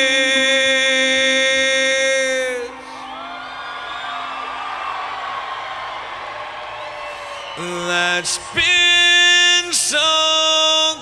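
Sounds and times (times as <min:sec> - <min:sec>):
man singing a long note: 0:00.0 - 0:03.2, 0:07.6 - 0:11.0
audience cheering and whooping: 0:02.8 - 0:10.0.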